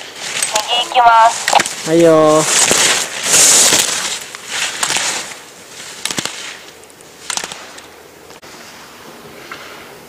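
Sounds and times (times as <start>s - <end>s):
skis scraping on hard snow: 1.7s - 6.6s.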